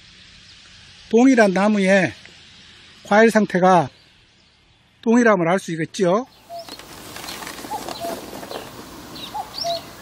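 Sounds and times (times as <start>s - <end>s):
birds chirping and whistling: 0.0s - 5.2s, 6.0s - 10.0s.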